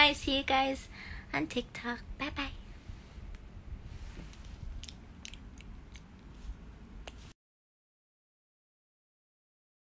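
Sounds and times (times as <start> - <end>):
low rumble: 2.0 - 7.2.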